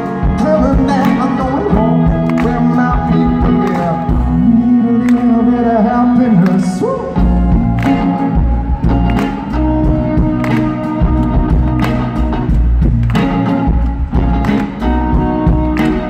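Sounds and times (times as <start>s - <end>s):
double bass: 7.1s - 16.0s
steady beat: 7.2s - 16.0s.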